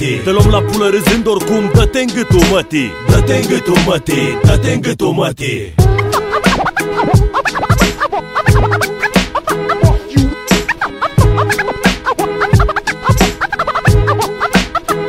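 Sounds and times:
hip hop beat: 0.0 - 15.0
turntable scratches: 5.8 - 15.0.

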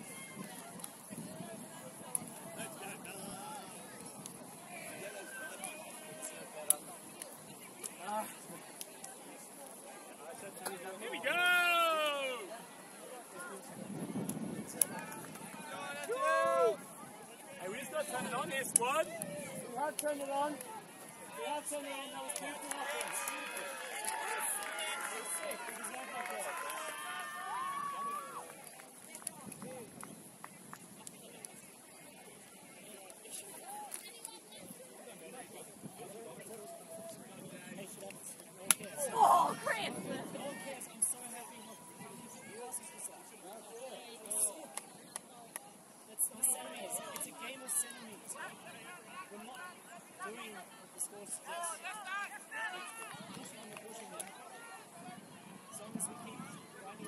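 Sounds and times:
low chatter of players: 0.0 - 57.0.

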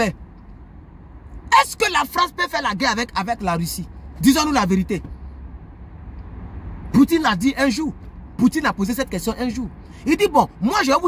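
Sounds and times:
low vehicle rumble: 0.0 - 11.0.

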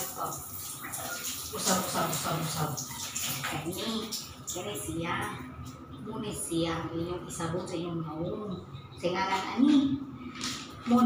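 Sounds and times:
woman talking: 0.0 - 0.6, 1.5 - 10.2, 10.8 - 11.0
shower water running: 0.0 - 8.4.

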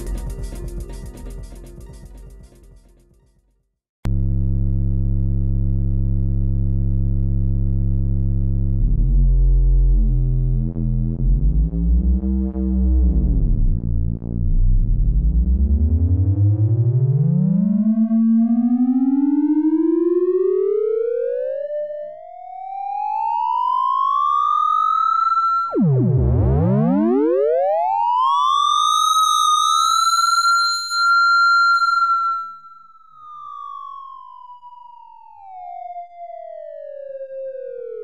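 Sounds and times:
buzzy electronic tone gliding in pitch: 29.8 - 34.4.

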